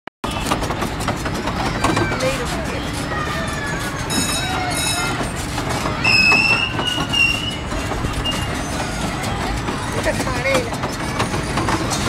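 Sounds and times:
children's and crowd voices: 0:00.2 - 0:12.0
fairground ride rumbling: 0:00.2 - 0:12.0
metallic squeals from turning gear: 0:01.9 - 0:09.4.

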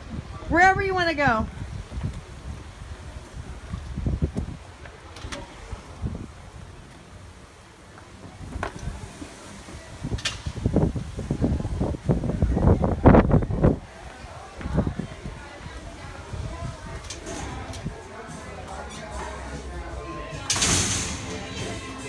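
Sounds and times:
wind buffeting microphone: 0:00.0 - 0:07.6, 0:08.2 - 0:18.2.

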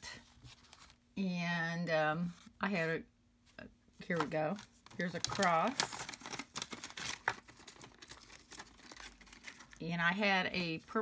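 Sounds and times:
cardstock rustling and ticking: 0:04.0 - 0:09.8.

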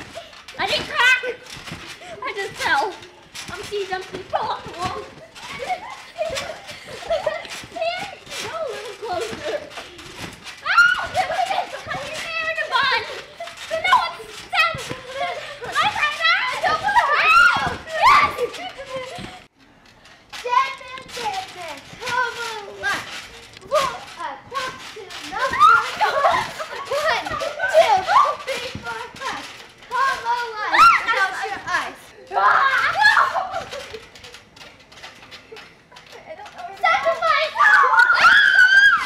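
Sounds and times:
thuds of trampoline landings: 0:00.0 - 0:19.5, 0:20.3 - 0:39.0
girls shouting squealing and laughing: 0:04.9 - 0:19.4, 0:24.6 - 0:28.8, 0:29.9 - 0:34.1, 0:36.8 - 0:39.0.

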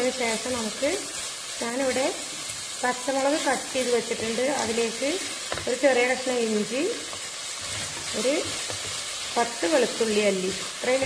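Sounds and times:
woman talking: 0:00.0 - 0:02.2, 0:02.8 - 0:07.0, 0:08.1 - 0:08.5, 0:09.4 - 0:11.0
onions sizzling in hot oil: 0:00.0 - 0:11.0
wooden spatula stirring: 0:07.0 - 0:11.0.

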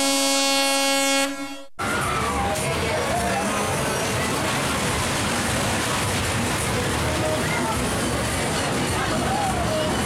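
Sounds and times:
fairground din: 0:01.1 - 0:10.0.

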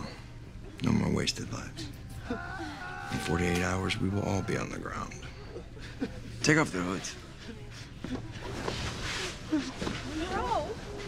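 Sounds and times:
people gasping and murmuring: 0:01.6 - 0:11.0
cloth hoods rustling: 0:07.8 - 0:11.0.

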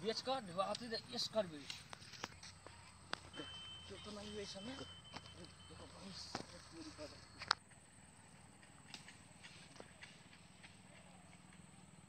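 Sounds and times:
faint irregular clicks: 0:00.6 - 0:01.0, 0:07.2 - 0:12.0.

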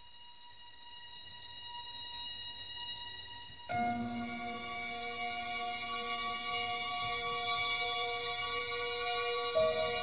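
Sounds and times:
high sustained soundtrack tone: 0:00.0 - 0:10.0.

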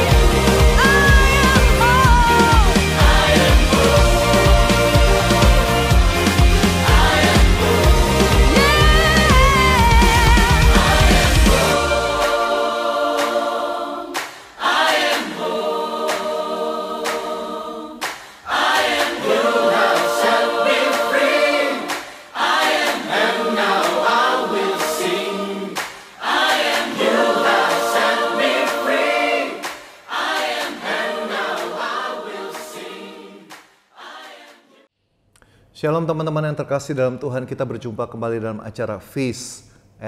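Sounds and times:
choir singing: 0:00.0 - 0:34.9.

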